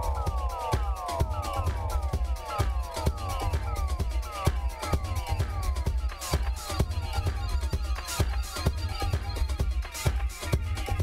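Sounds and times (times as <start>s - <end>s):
electronic dance music: 0.0s - 11.0s
heavy bass line: 0.0s - 11.0s.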